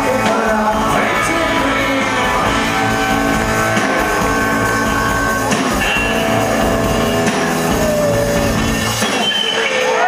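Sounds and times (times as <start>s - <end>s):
electric guitar: 0.0s - 10.0s
live rock band playing: 0.0s - 10.0s.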